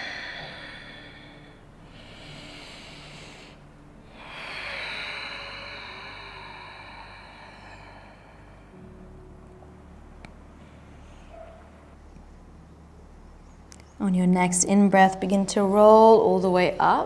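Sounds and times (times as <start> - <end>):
person breathing slowly: 0.0 - 9.1, 10.5 - 11.7.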